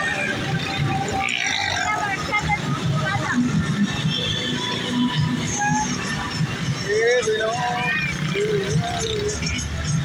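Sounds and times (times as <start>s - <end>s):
motorcycles and cars in traffic: 0.0s - 10.0s
people talking and calling out: 0.0s - 10.0s.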